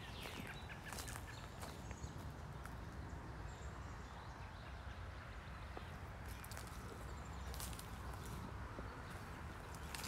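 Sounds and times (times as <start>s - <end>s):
footsteps on gravel: 0.0s - 2.8s, 6.2s - 10.0s.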